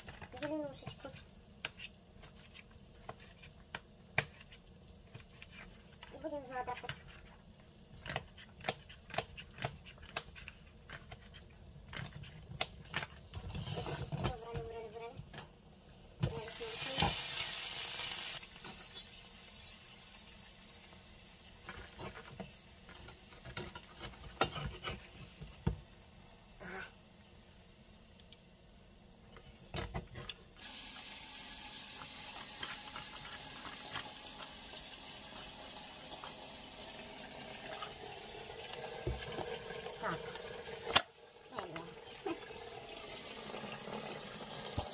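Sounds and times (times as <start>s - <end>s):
spatula scraping in frying pan: 23.0s - 25.5s.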